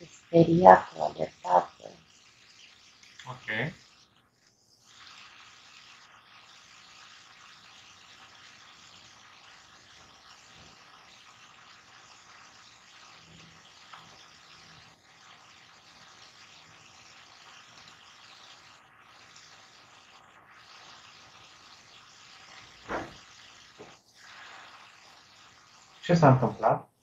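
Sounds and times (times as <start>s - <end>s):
microphone line hiss: 3.2s - 3.8s, 26.0s - 27.0s.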